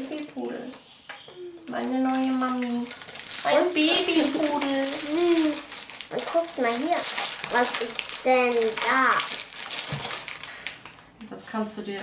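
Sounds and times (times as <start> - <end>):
plastic packaging crinkling: 0.0 - 0.9, 1.6 - 11.2.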